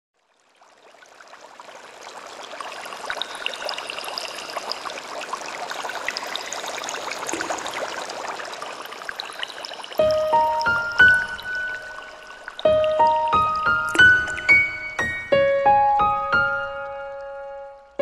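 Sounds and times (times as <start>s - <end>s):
stream running water: 0.2s - 18.0s
water splashes and drips: 0.2s - 18.0s.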